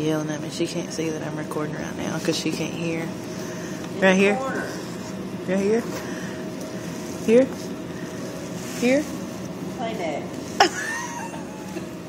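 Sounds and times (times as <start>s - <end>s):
person speaking: 8.7s - 10.3s
hood hair dryer whirring: 10.2s - 12.0s.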